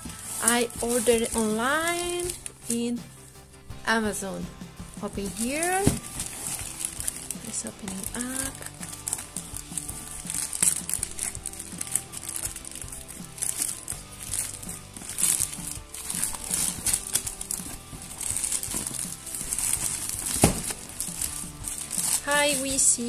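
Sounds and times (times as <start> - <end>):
plastic bag crinkling and tearing: 0.0 - 2.6, 5.1 - 23.0
background music: 0.0 - 23.0.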